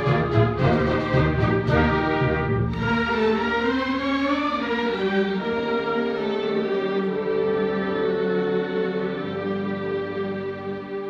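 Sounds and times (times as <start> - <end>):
bowed strings sustained notes: 0.0 - 11.0
symphony orchestra playing: 0.0 - 11.0.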